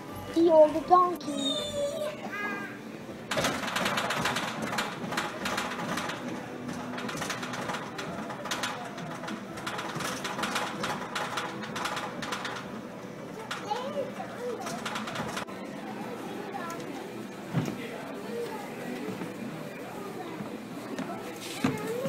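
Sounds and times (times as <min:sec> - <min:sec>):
kiddie ride rapid clatter: 0:03.3 - 0:15.5.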